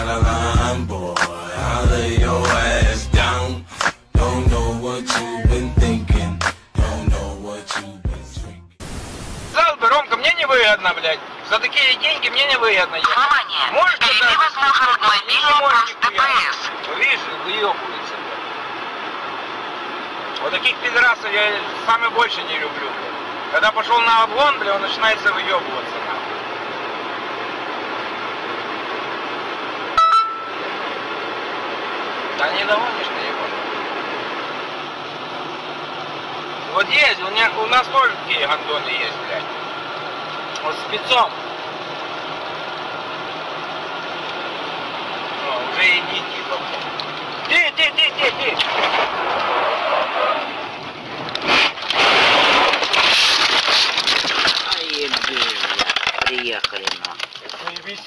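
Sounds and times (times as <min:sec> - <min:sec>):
road and tyre noise: 0:00.0 - 0:58.0
crunching and crackling of windshield: 0:46.2 - 0:58.0
car crash impact: 0:48.3 - 0:57.0.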